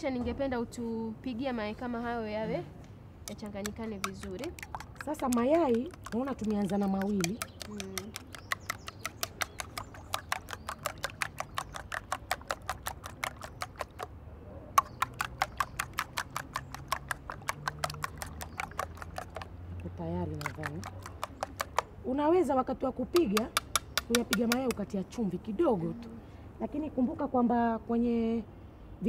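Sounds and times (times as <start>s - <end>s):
fork beating eggs in plastic bowl: 3.3s - 14.1s, 14.8s - 22.0s, 23.2s - 24.8s.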